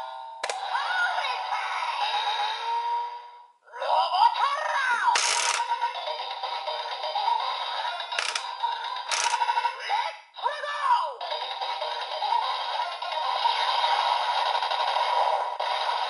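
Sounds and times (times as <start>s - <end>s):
toy electronic music: 5.1s - 9.9s, 11.2s - 16.0s.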